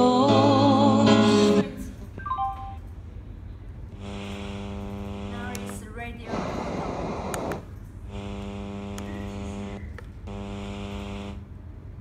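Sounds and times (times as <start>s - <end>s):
speaker electrical buzz: 3.9s - 12.0s
radio static hiss: 4.0s - 11.4s.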